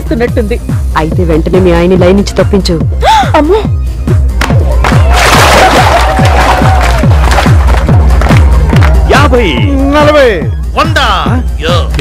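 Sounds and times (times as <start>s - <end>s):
dance music with deep kick drums: 5.8s - 12.0s.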